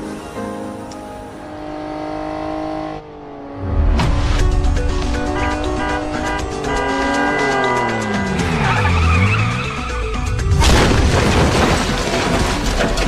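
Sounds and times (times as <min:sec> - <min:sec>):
dramatic music: 0:03.6 - 0:13.0
motorcycle crashing and sliding: 0:10.4 - 0:13.0.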